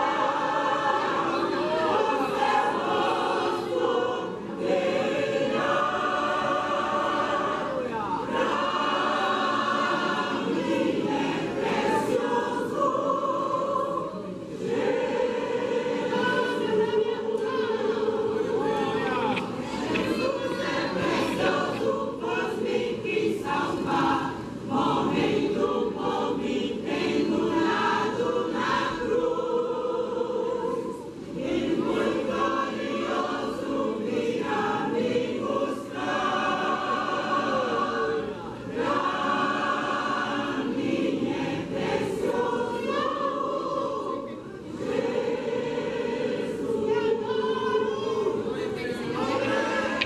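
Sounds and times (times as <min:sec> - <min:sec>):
mixed choir singing a hymn: 0:00.0 - 0:50.0.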